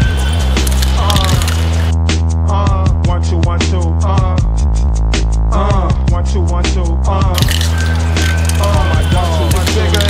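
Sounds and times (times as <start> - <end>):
background music with deep bass: 0.0 - 10.0.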